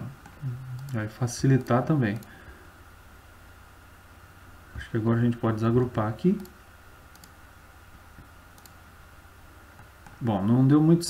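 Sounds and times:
low steady hum: 0.0 - 11.0
computer mouse clicks: 0.2 - 1.0, 1.6 - 2.4, 6.4 - 7.4, 8.2 - 8.8, 9.7 - 10.2.

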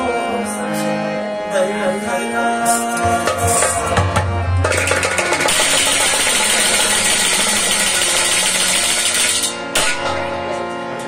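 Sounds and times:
harmonium chords: 0.0 - 11.0
hand drum strokes: 2.6 - 10.7.

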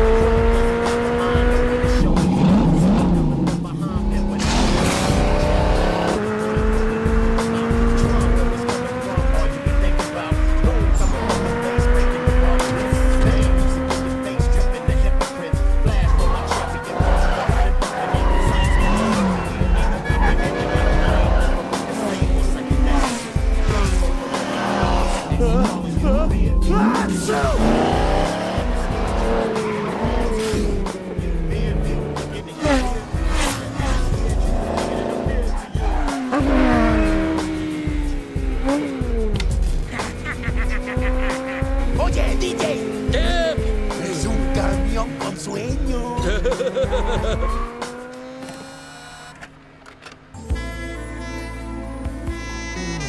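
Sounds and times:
bass-heavy music: 0.0 - 48.5, 50.3 - 53.0
car engines revving: 0.0 - 50.4
tires squealing and skidding: 15.9 - 25.4, 32.2 - 37.7, 44.1 - 49.4.

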